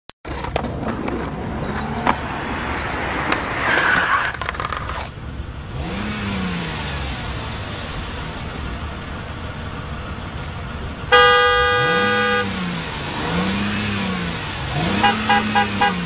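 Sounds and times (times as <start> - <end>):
skateboard wheels rolling on pavement: 0.2 - 11.1
car engine: 0.2 - 16.0
skateboard scraping: 0.3 - 5.2.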